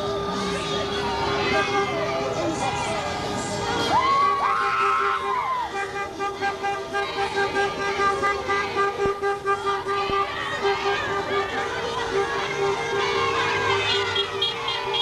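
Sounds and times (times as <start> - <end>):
crowd voices: 0.0 - 15.0
car horns honking: 4.4 - 15.0.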